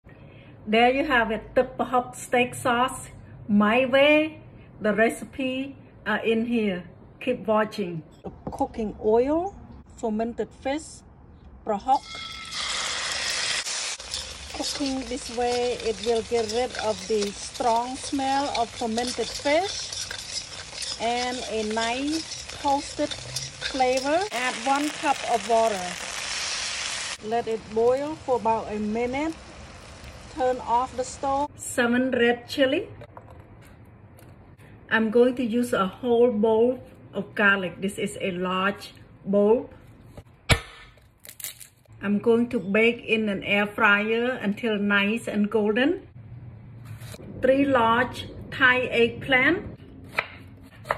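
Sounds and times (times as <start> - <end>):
fish paste sizzling in hot oil: 12.0 - 31.5
garlic bulb cracking: 40.5 - 41.8.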